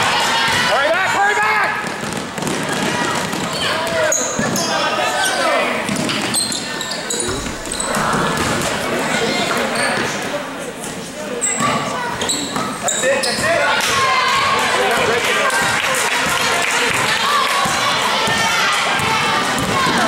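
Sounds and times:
voices in a hall: 0:00.0 - 0:20.0
sneaker squeaks: 0:03.2 - 0:10.3, 0:11.3 - 0:13.6.

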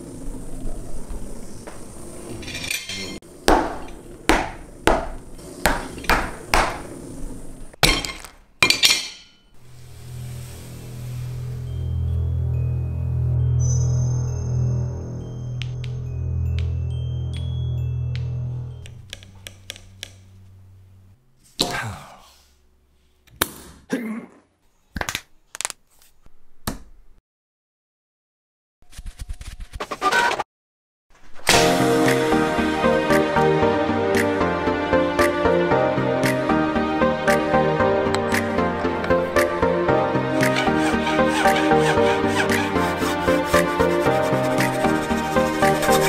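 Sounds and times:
china plate clinking: 0:02.4 - 0:03.2, 0:07.8 - 0:09.5
whacks on hard tabletop: 0:03.5 - 0:06.9
background music: 0:10.1 - 0:20.4, 0:31.5 - 0:46.0.

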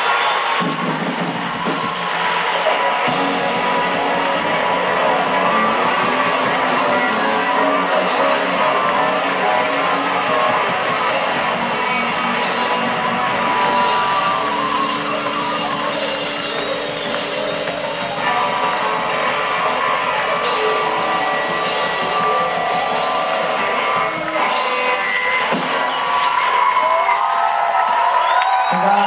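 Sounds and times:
live rock band playing: 0:00.0 - 0:29.0.

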